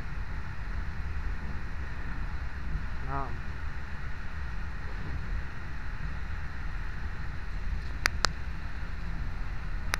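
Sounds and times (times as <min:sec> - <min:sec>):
train running low rumble: 0:00.0 - 0:09.9.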